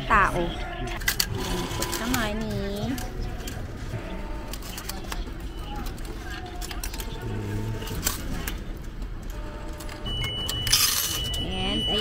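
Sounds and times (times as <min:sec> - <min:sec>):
murmur of voices: 0:00.0 - 0:09.3
coins clinking into machine slot: 0:09.8 - 0:12.0.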